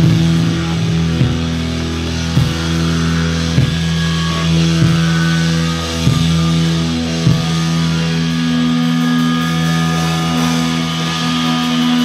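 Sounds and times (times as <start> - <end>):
slow heavy drum hits: 0.0 - 9.9
distorted guitar and bass chords: 0.0 - 12.0.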